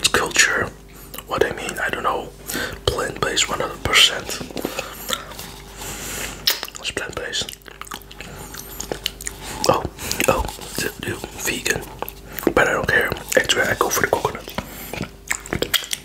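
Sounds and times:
wet lip smacks and clicks: 7.4s - 10.5s, 14.9s - 16.0s.

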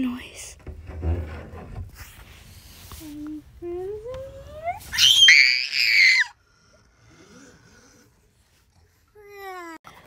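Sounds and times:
child screaming high-pitched: 4.0s - 6.3s.

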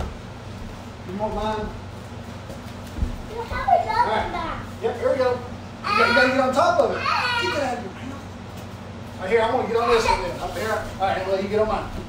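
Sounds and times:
children talking and calling out: 3.3s - 4.8s, 5.8s - 8.1s.

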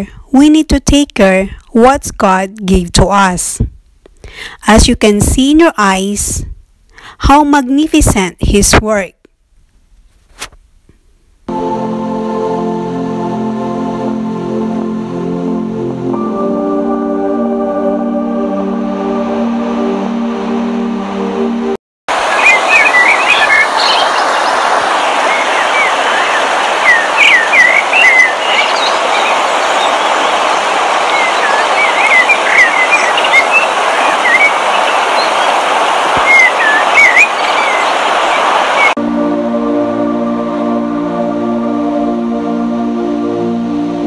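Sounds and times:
ambient music with sustained chords: 11.5s - 21.8s, 38.9s - 44.0s
waterfall rushing: 17.7s - 44.0s
birds chirping: 22.2s - 39.0s.

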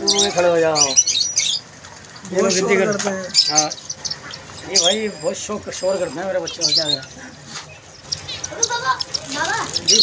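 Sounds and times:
crowded market noise: 0.0s - 10.0s
small birds chirping: 0.0s - 10.0s.

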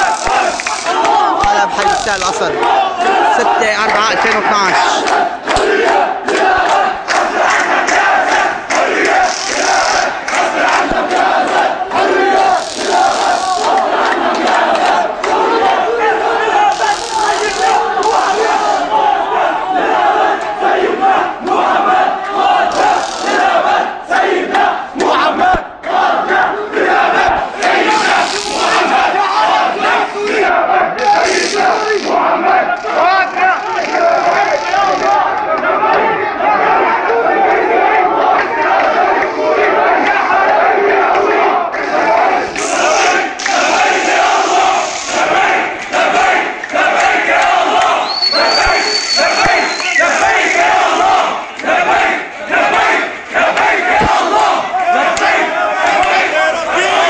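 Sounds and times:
crowd shouting and chanting: 0.0s - 57.0s.

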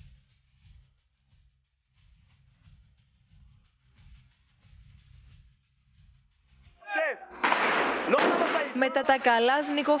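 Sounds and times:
loud burst of weapons fire: 7.4s - 8.8s.

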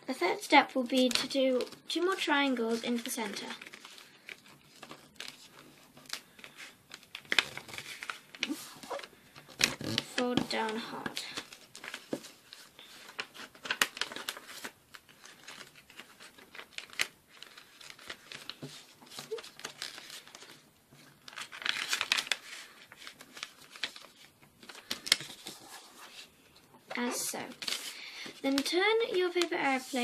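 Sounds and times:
paper rustling and crinkling: 0.5s - 30.0s
paper cracking: 1.0s - 26.2s, 26.9s - 30.0s.

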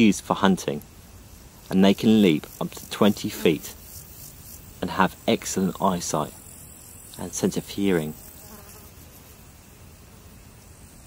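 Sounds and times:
faint insect buzzing: 0.0s - 11.0s.

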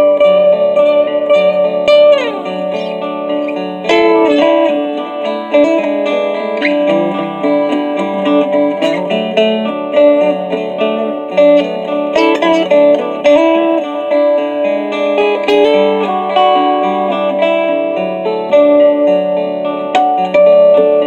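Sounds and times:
guitar picked notes and chords: 0.0s - 21.0s
looped guitar part: 0.0s - 21.0s.

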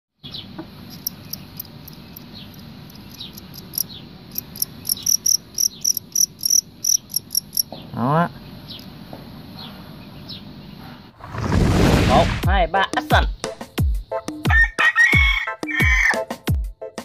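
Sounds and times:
crickets chirping: 0.3s - 14.8s.

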